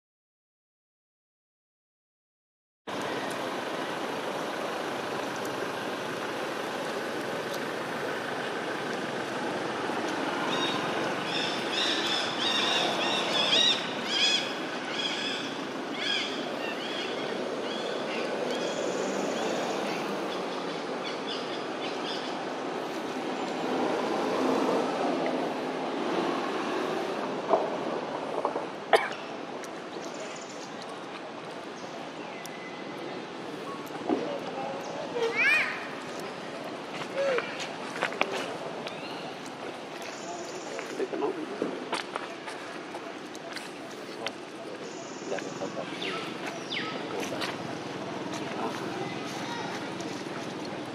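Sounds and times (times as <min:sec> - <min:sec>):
outdoor noise haze: 0:02.9 - 0:50.9.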